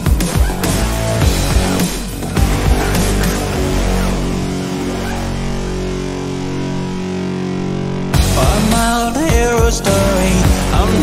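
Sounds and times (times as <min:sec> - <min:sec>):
distorted guitar chord ringing: 0:00.9 - 0:10.9.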